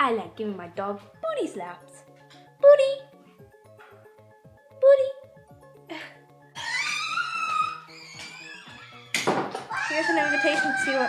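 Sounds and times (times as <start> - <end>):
high drawn-out pitch-bending cry: 6.5 - 11.0.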